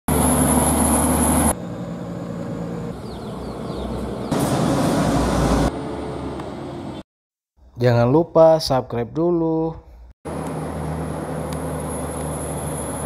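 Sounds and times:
diesel trucks passing: 0:00.1 - 0:07.0, 0:10.3 - 0:13.0.

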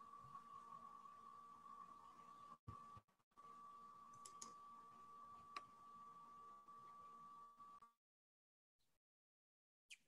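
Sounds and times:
faint clicks: 0:04.1 - 0:04.6.

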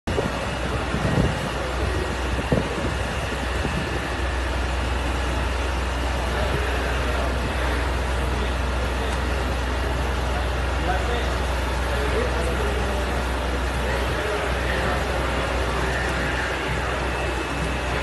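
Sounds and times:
fire engine engine running: 0:00.1 - 0:18.0.

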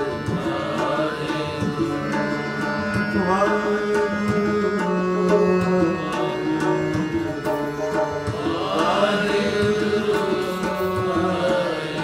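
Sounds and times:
harmonium notes: 0:00.0 - 0:12.0
plucked rabab strings: 0:00.0 - 0:12.0
tabla strokes: 0:00.0 - 0:12.0.

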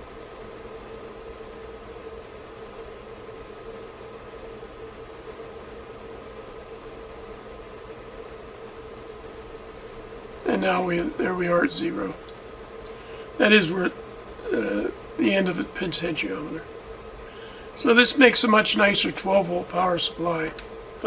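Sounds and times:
electrical hum: 0:00.0 - 0:21.0
low hiss: 0:00.0 - 0:21.0.

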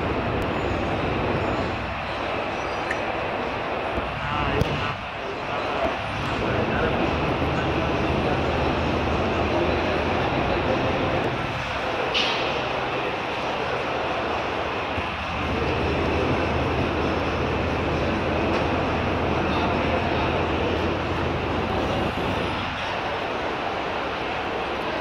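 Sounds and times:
indistinct voices: 0:00.0 - 0:25.0
low machinery hum: 0:00.0 - 0:25.0.

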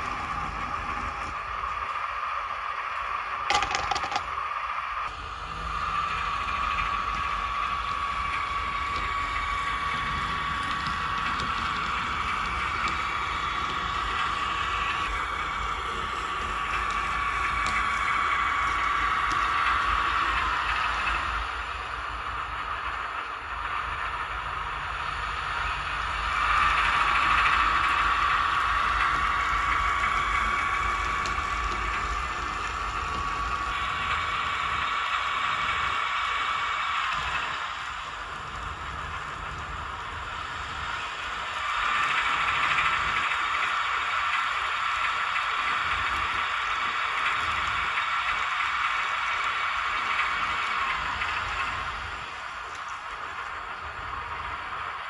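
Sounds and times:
high whine: 0:00.0 - 0:55.0
model train diesel engine sound: 0:00.0 - 0:55.0.

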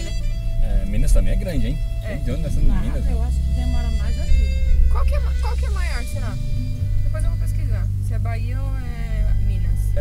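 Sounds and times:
people talking: 0:00.0 - 0:06.4, 0:07.1 - 0:10.0
car engine and tyres rumbling: 0:00.0 - 0:10.0.

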